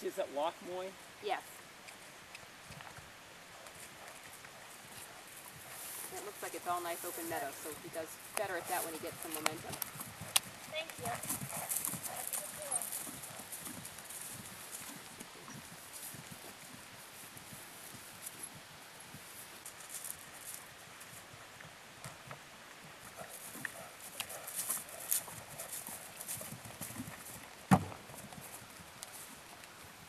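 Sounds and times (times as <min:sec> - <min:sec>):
horse hoofbeats on grass: 0:01.3 - 0:30.0.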